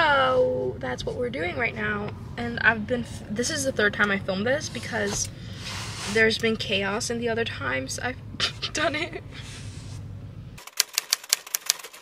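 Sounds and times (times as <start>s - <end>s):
low car cabin hum: 0.0s - 10.6s.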